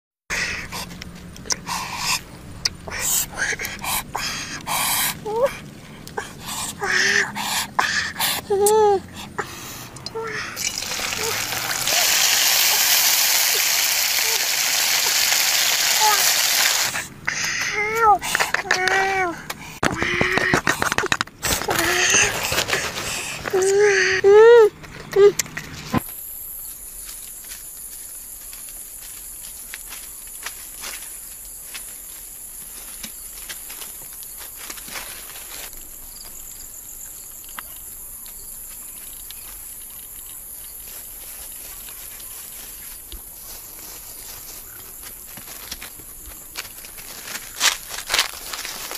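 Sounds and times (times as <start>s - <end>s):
sizzling in hot oil: 10.6s - 17.0s
insect chorus: 26.0s - 48.9s.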